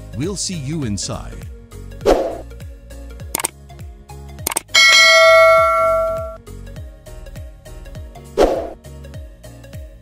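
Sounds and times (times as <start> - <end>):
mouse clicks: 4.5 - 4.7
bright bell chime: 4.8 - 6.4.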